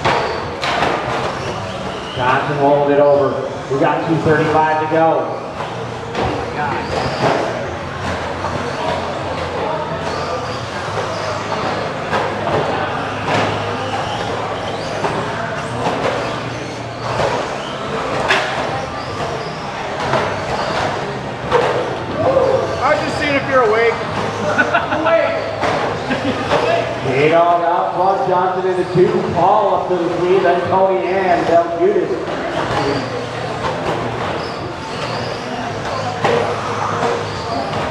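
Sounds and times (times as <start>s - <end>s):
voices chattering in a hall: 0.0s - 37.9s.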